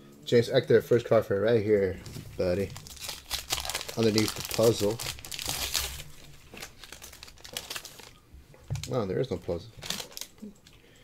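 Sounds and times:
wax paper wrapper crinkling: 0:01.3 - 0:10.8.

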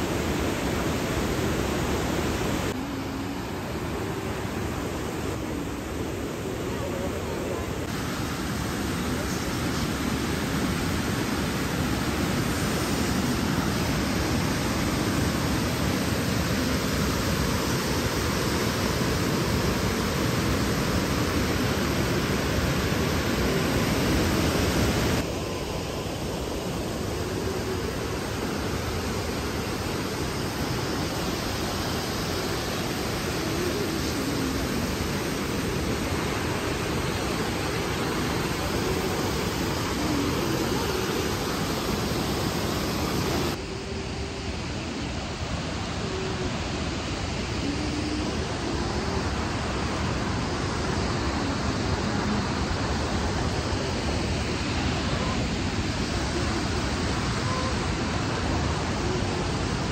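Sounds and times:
river rushing over rocks: 0:00.0 - 0:59.9.

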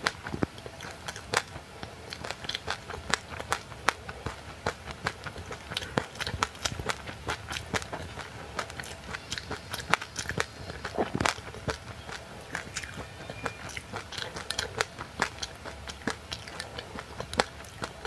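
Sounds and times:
crunchy chewing: 0:00.0 - 0:18.0.

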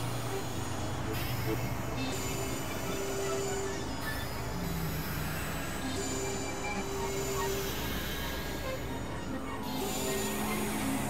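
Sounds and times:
hissing synthesizer noise drone: 0:00.0 - 0:11.0.

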